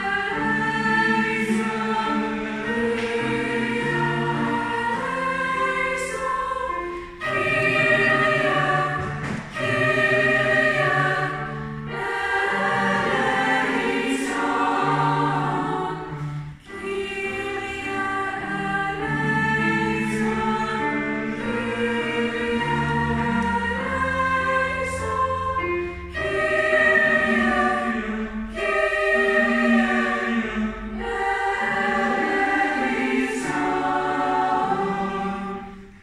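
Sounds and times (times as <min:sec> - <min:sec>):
choir singing in parts: 0:00.0 - 0:36.0.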